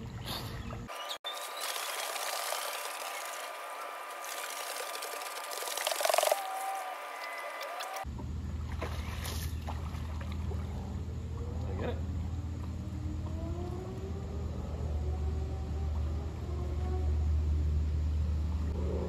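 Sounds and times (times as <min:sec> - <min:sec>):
pool water splashing: 0:00.0 - 0:11.5.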